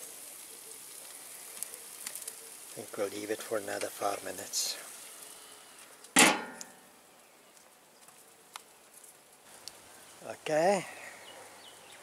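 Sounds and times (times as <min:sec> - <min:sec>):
metal lid clanging shut: 0:06.2 - 0:06.8
faint ticks: 0:07.6 - 0:09.8.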